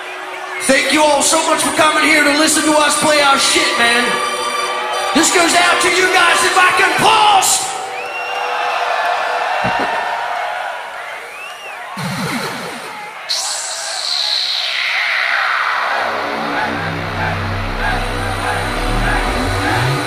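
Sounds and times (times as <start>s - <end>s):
crowd cheering and whistling: 0.0s - 20.0s
low sustained bass notes: 16.1s - 20.0s.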